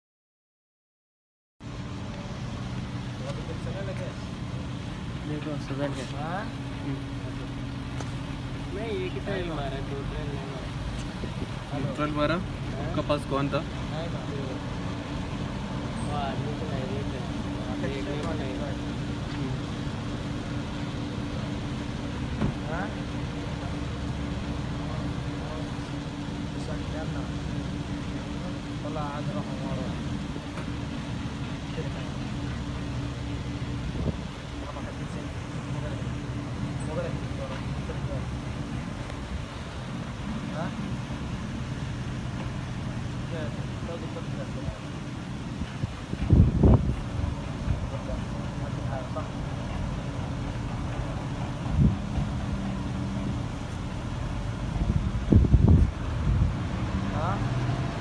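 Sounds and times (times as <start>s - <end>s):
low engine idling hum: 1.6s - 58.0s
wind rumbling on microphone: 33.8s - 34.4s, 45.5s - 48.0s, 51.5s - 52.6s, 54.5s - 56.9s.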